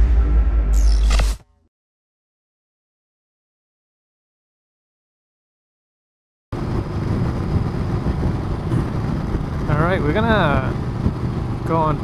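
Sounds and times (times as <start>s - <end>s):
motorcycle engine running: 6.6s - 12.0s
wind noise on microphone: 6.6s - 12.0s.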